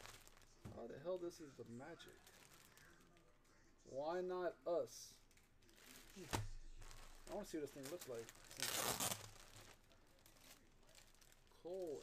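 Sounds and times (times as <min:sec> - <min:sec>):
plastic bag crinkling: 0:00.0 - 0:03.6, 0:05.3 - 0:12.0.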